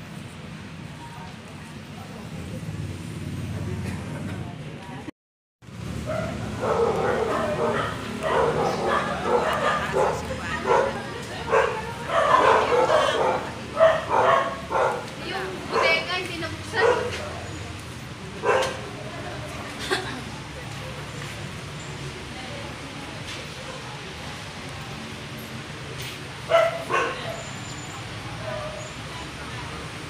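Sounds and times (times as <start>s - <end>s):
people talking: 0.9s - 5.1s, 6.1s - 30.0s
dog barking: 6.1s - 15.1s, 15.7s - 16.1s, 16.8s - 17.3s, 18.4s - 18.8s, 26.5s - 27.5s, 28.4s - 28.9s.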